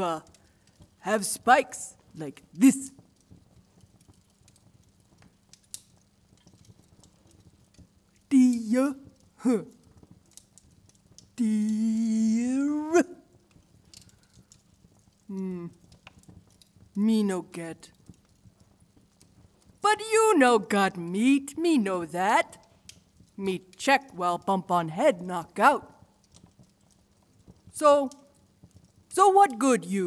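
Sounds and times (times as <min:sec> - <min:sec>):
woman speaking: 0:00.0 - 0:00.3, 0:01.0 - 0:03.0, 0:08.3 - 0:09.8, 0:11.4 - 0:13.2, 0:15.3 - 0:15.8, 0:17.0 - 0:17.9, 0:19.8 - 0:22.6, 0:23.4 - 0:26.0, 0:27.8 - 0:28.2, 0:29.1 - 0:30.0
fire crackling and popping: 0:00.0 - 0:30.0.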